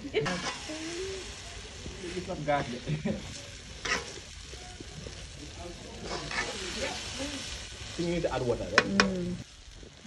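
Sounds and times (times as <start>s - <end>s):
seeds sizzling in oil: 0.0s - 10.0s
spoon stirring in pot: 3.8s - 4.2s.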